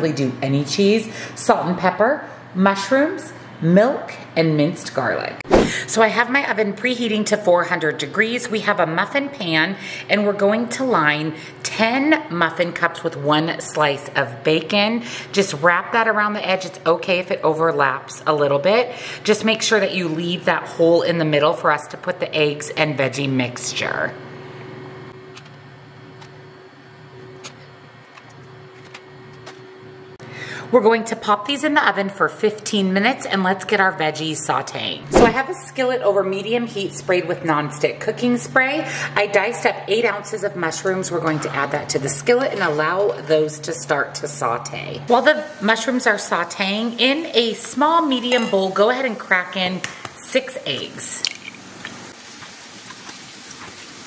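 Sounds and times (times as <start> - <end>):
low electrical hum: 0.0 - 53.8
mushrooms sizzling in a skillet: 45.1 - 49.7, 50.4 - 54.0.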